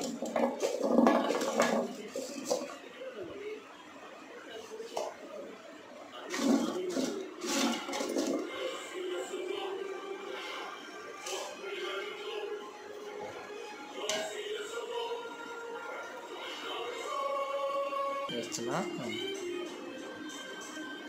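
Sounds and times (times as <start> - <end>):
background music: 5.0 - 21.0.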